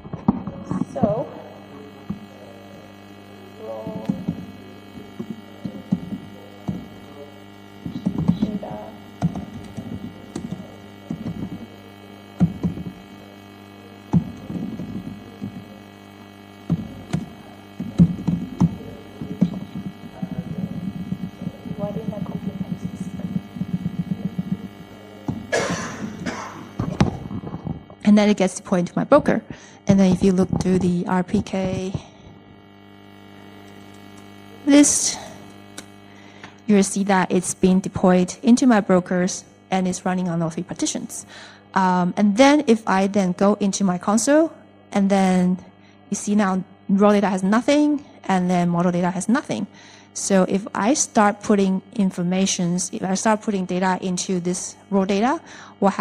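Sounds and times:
electrical mains hum: 0.0 - 56.0
laptop keyboard typing: 9.2 - 11.6.

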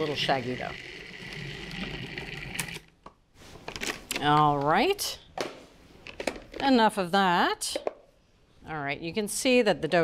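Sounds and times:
food processor motor running: 0.0 - 2.8.

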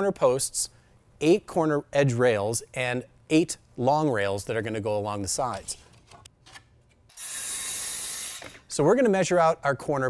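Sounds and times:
circular saw cutting wood: 7.1 - 8.5.

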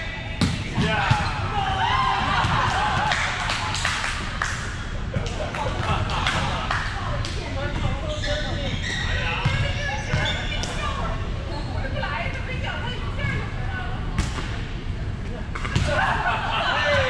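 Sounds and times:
balls bouncing on gym floor: 0.4 - 1.4, 14.2 - 14.6.

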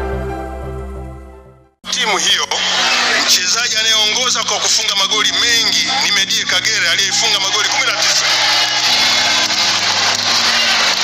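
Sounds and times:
man speaking into a microphone: 1.9 - 8.0.

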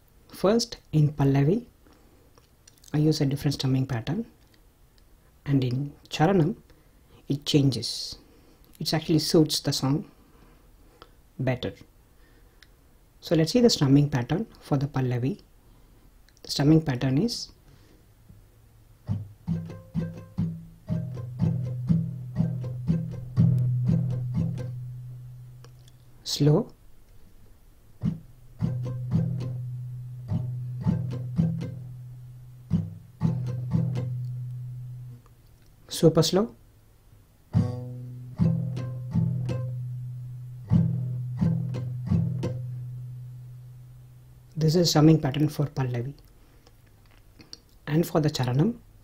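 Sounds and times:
acoustic guitar strumming: 19.0 - 25.6, 28.0 - 35.2, 37.5 - 44.0.

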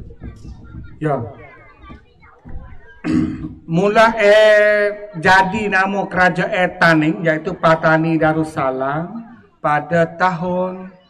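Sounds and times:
background voices murmuring: 0.0 - 11.0
man speaking into a microphone: 1.0 - 1.4, 3.5 - 11.0.

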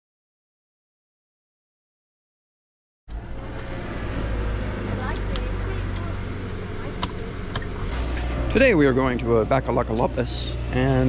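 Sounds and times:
car engine idling: 3.1 - 11.0.

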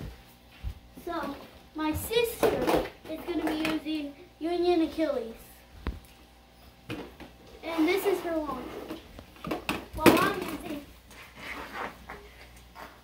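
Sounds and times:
child talking: 1.0 - 5.7, 7.6 - 9.0, 9.9 - 11.0.

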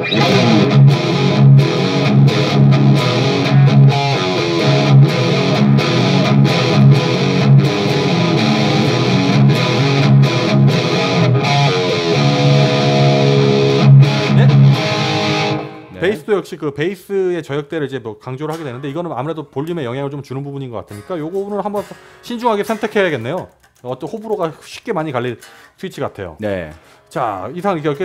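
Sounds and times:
distorted electric guitar riffs: 0.0 - 16.2.

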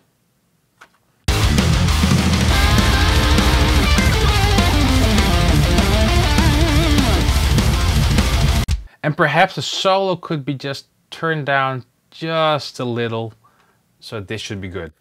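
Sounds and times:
metal band playing: 1.3 - 8.6
electric guitar solo: 2.2 - 8.0.

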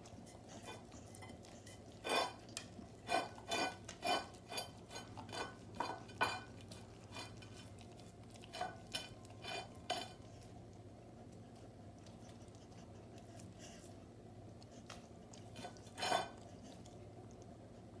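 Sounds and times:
dog licking a plate: 0.0 - 13.7.

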